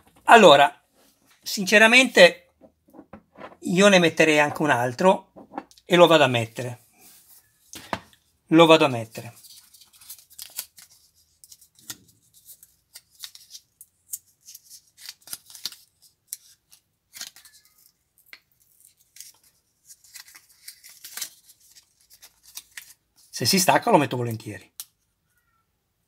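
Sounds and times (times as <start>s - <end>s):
paper backing peeling crackles: 9.2s - 23.3s.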